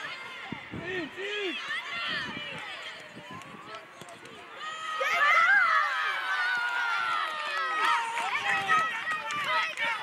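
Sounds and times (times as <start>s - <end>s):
children shouting: 4.6s - 10.0s.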